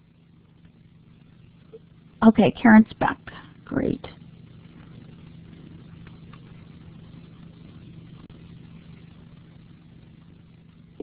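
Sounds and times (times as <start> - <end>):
low electrical hum: 0.0 - 11.0
microphone hiss: 0.0 - 11.0.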